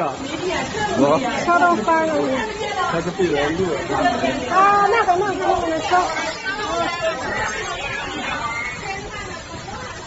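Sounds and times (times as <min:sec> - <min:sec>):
people talking and exclaiming: 0:00.0 - 0:10.0
rushing floodwater: 0:00.0 - 0:10.0.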